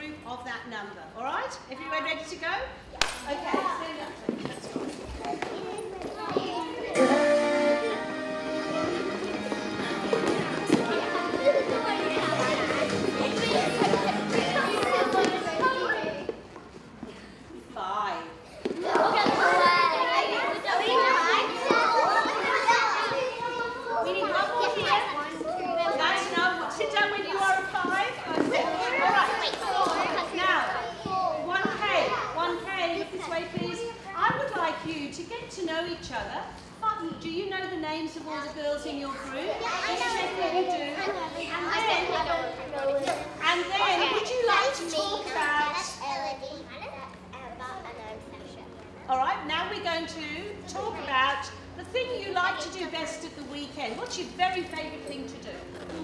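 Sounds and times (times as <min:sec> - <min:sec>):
girls talking and calling out: 0:00.0 - 0:56.0
children calling out: 0:05.3 - 0:16.3, 0:18.5 - 0:26.8, 0:39.2 - 0:47.0.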